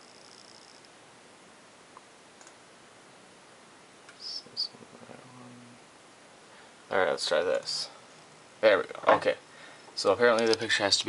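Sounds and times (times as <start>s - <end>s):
faint low hum: 0.0s - 11.0s
computer mouse clicks: 2.4s - 2.6s.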